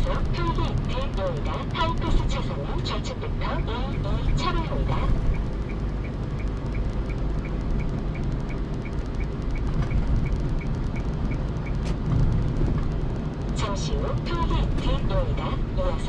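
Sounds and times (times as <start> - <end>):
car road and engine rumble: 0.0 - 16.0
turn signal ticking: 0.0 - 16.0.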